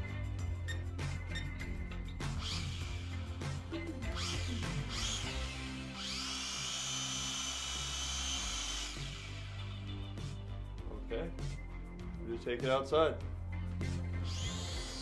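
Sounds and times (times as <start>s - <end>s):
small electric motors whining: 1.9s - 10.1s, 14.1s - 15.0s.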